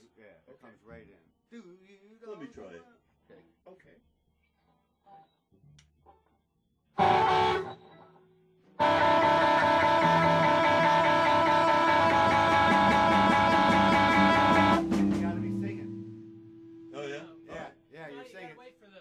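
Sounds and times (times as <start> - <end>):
electric guitar chords: 7.0 - 8.0, 8.8 - 17.5.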